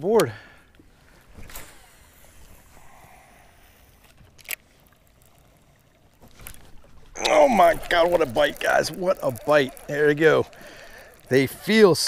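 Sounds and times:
fishing reel whir: 1.5 - 12.0.

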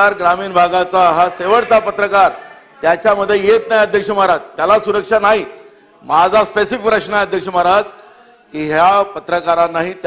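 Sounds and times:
man speaking forcefully: 0.0 - 10.0.

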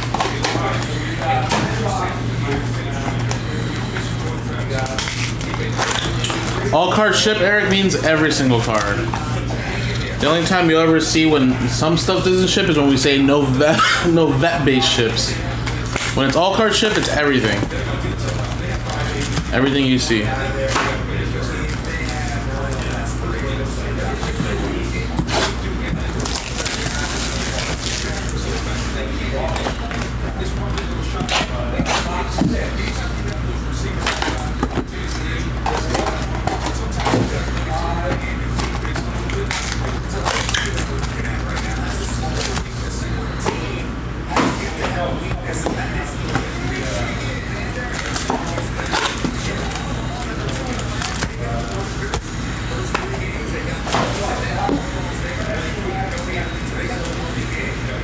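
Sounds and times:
card packs crackling and rustling: 3.2 - 11.2, 15.0 - 20.7, 21.4 - 30.9, 31.8 - 43.7, 44.6 - 54.6.

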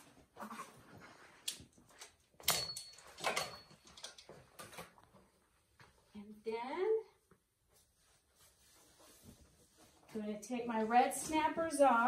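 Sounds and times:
rustling handling sounds: 7.5 - 12.0.

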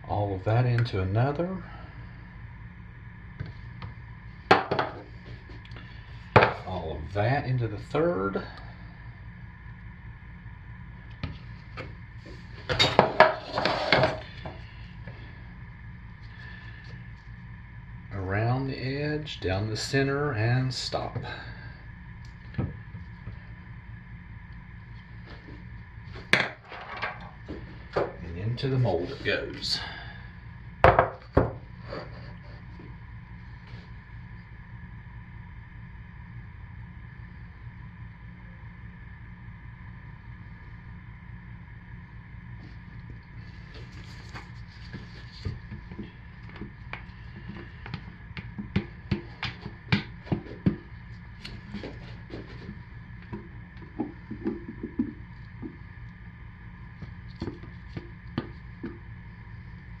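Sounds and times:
steady background hum: 0.0 - 60.0.

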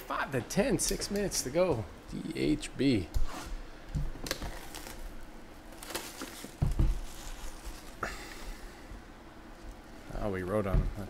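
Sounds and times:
plastic shrink wrap tearing: 4.2 - 8.0.

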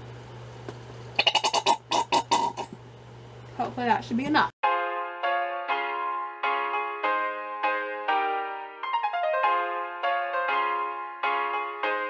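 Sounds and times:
squeezed bottle sputtering: 1.2 - 2.7.

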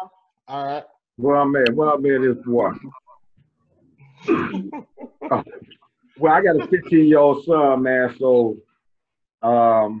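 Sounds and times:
laughter over video call: 4.5 - 7.3.

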